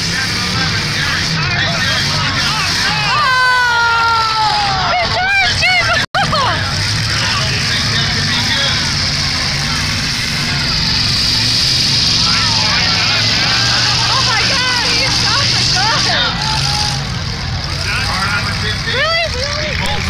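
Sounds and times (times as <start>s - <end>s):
car engines droning: 0.0s - 20.0s
people shouting: 1.4s - 6.7s, 9.8s - 18.2s.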